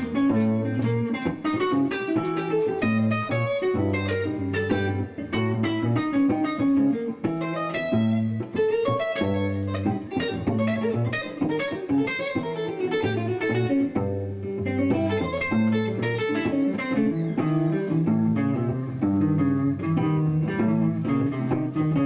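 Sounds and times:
electric guitar single-note lines: 0.0s - 22.0s.

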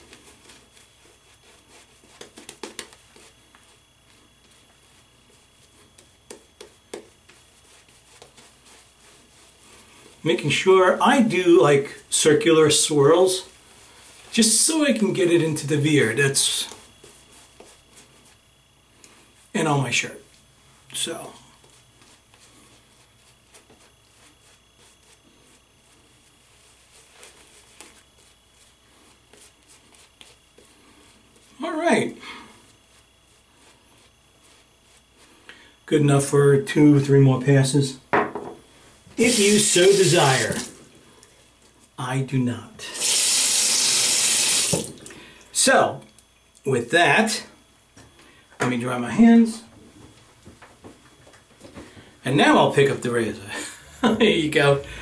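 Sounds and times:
shaving brush rubbing stubble: 0.0s - 31.7s, 32.5s - 35.5s, 39.1s - 42.0s.

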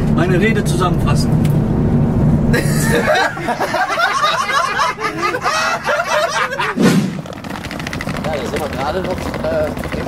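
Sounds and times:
men laughing loudly: 2.5s - 6.9s
low thud: 6.8s - 8.1s.

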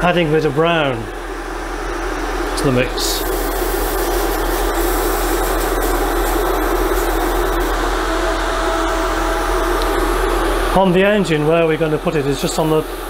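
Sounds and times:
low steady hum: 0.0s - 13.0s
airbrush air hiss: 2.6s - 10.9s.

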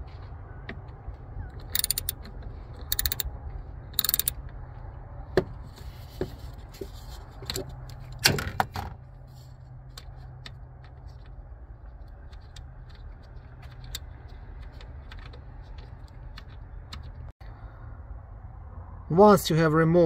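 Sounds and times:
ratchet clicking: 1.6s - 2.2s, 2.8s - 3.3s, 4.0s - 4.4s.

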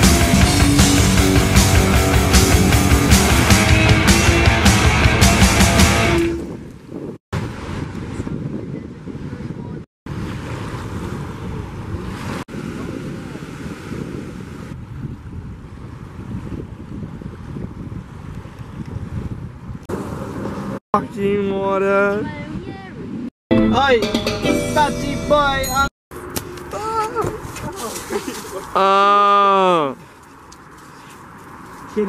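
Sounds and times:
punk rock music: 0.0s - 6.4s, 23.5s - 25.9s
wind buffeting microphone: 6.2s - 23.3s
ocean surf breaking: 10.1s - 14.8s.

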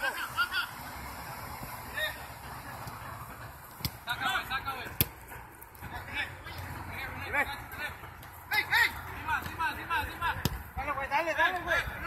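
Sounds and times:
ball being kicked: 3.7s - 6.8s, 8.1s - 10.8s
soccer players shouting: 5.8s - 12.0s.

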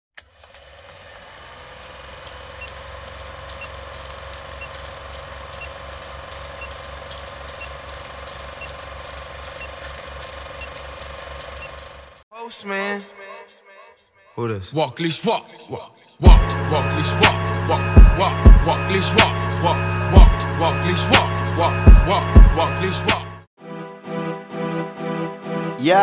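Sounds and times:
film projector clattering: 0.2s - 12.2s.

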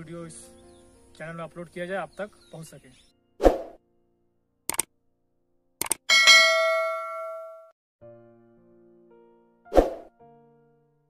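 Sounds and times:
bright bell ding: 6.1s - 7.7s.

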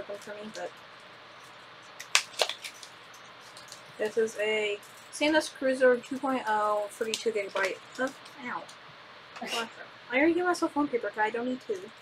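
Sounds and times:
packaging rustling: 0.2s - 5.2s.

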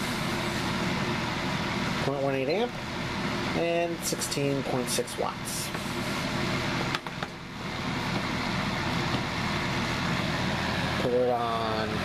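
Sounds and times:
fan heater running: 0.0s - 12.0s.

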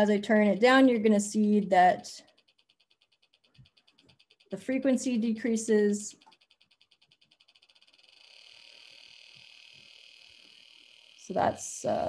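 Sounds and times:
oscillator clicks merging into buzz: 0.0s - 12.0s.

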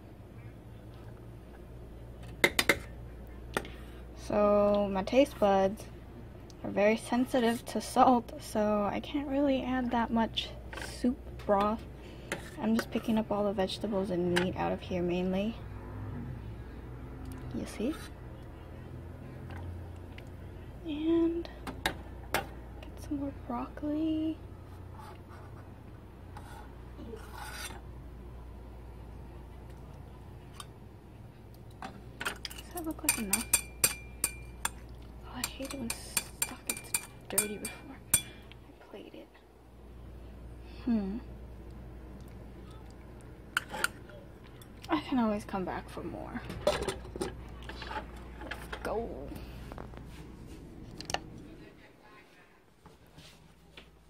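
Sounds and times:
low steady hum: 0.0s - 54.0s
metal ladle scraping pot: 26.4s - 27.8s
kitchenware clinking: 32.2s - 34.8s, 35.4s - 38.4s.

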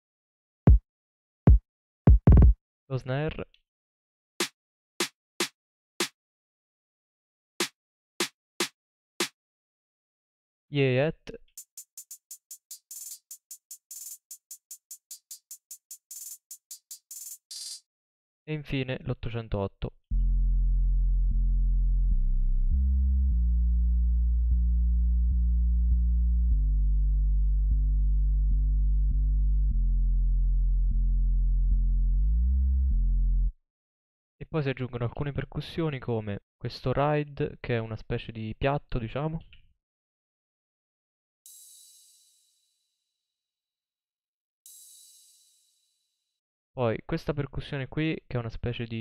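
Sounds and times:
deep sub-bass notes: 20.1s - 33.5s.

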